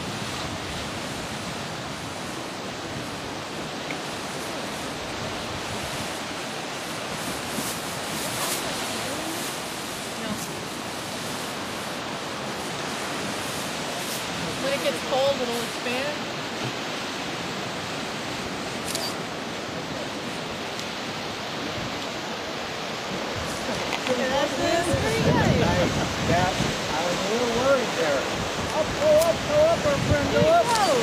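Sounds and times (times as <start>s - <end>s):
waves breaking on rocky shore: 0.0s - 31.0s
wind: 0.0s - 31.0s.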